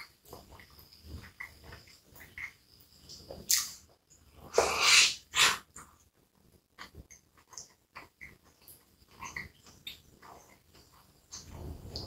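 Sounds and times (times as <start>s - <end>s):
wet chewing with mouth clicks: 6.7s - 12.0s.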